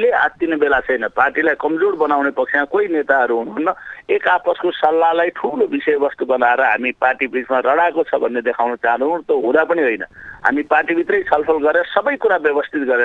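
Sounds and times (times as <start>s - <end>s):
person talking: 0.0s - 13.0s.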